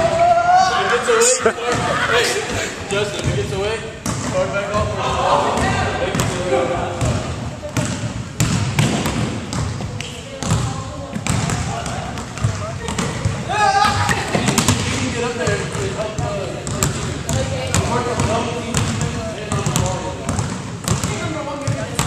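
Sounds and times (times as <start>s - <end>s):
people talking: 0.6s - 8.2s, 9.8s - 22.0s
basketballs bouncing on wooden floor: 3.2s - 22.0s.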